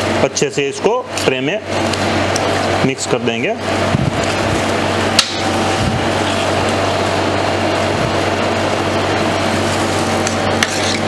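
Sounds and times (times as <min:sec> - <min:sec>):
ice cream machine humming: 0:00.0 - 0:11.0
metal spatula scraping plate: 0:10.6 - 0:11.0.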